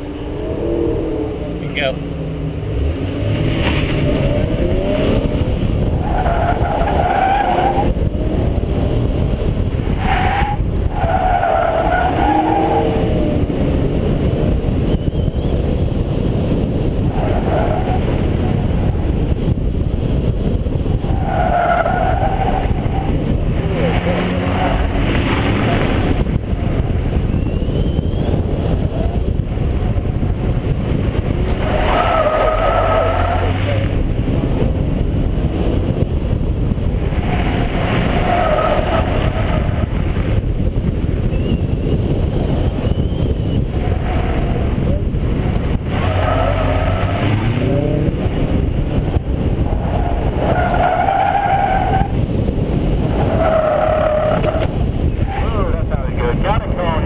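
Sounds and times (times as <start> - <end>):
car engine revving: 0.0 - 40.7, 41.9 - 57.0
wind noise on microphone: 0.0 - 57.0
tires squealing: 2.7 - 19.6, 20.2 - 34.8, 36.7 - 57.0.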